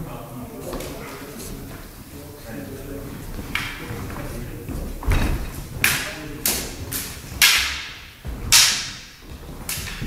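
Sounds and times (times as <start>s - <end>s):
swords knocking: 7.4s - 9.1s.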